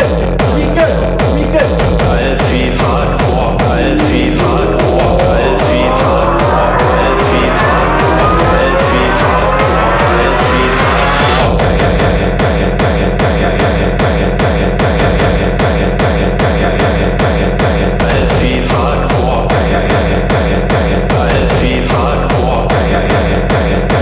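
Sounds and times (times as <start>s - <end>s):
hardcore techno music: 0.6s - 12.5s
rising synth build-up: 2.0s - 12.1s.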